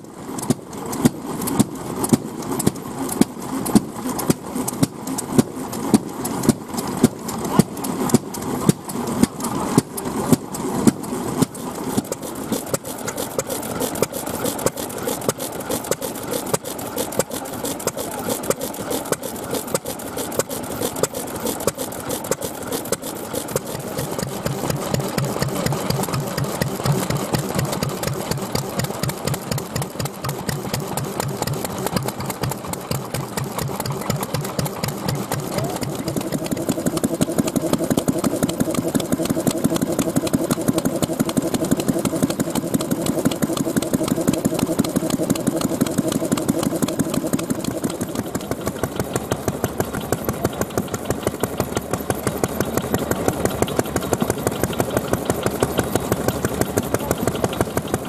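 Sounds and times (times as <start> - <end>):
stationary engines chugging: 0.0 - 58.0.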